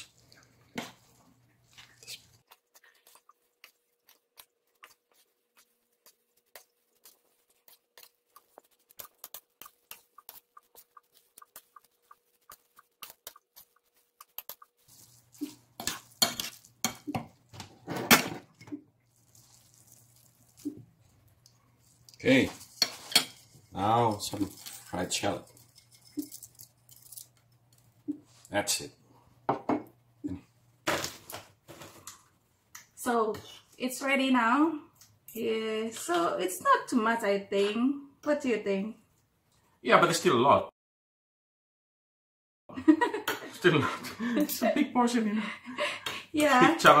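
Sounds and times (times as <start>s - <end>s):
fork scraping a plate: 4.1s - 17.3s, 22.5s - 26.4s.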